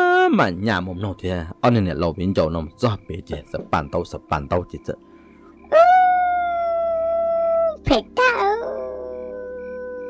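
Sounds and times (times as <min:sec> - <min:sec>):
long howls: 0:05.6 - 0:10.0.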